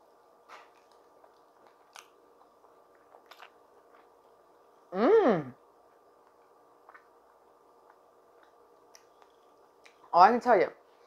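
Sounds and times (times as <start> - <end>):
quiet chewing: 0.4 - 4.7, 5.8 - 10.1.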